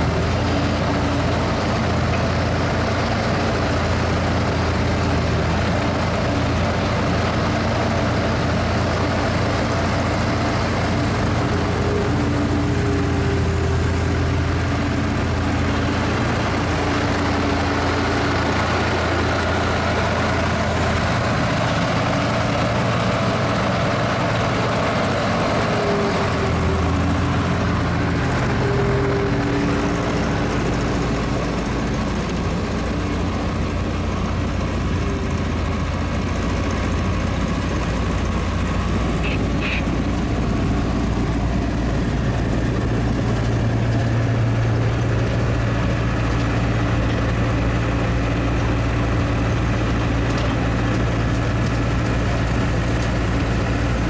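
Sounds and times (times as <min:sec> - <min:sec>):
diesel engine drone: 0:00.0 - 0:54.0.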